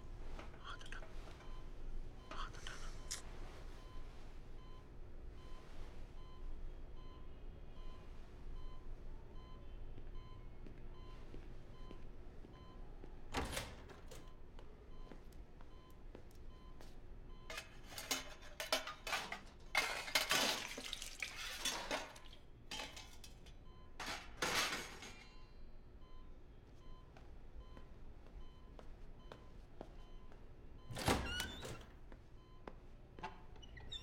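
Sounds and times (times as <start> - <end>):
patient monitor beeping: 0.6 - 20.0, 23.6 - 31.7.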